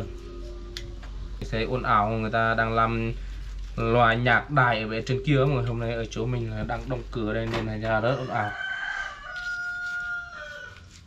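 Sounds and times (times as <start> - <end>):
rooster crowing: 8.0 - 11.0.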